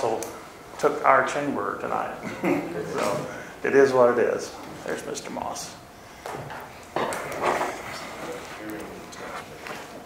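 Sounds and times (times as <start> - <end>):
scattered clicks: 0.0 - 0.4.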